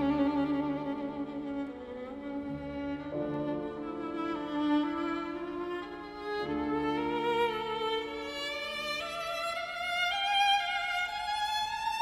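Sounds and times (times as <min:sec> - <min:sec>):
violin with vibrato: 0:00.0 - 0:12.0.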